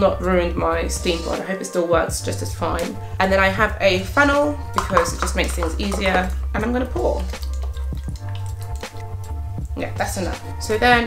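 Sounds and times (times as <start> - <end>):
background music: 0.0 - 11.0
water trickling through funnel: 4.5 - 10.3.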